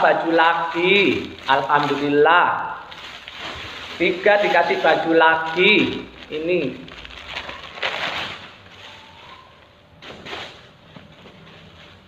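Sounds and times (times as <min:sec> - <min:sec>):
clothes packaging rustling: 0:00.0 - 0:12.0.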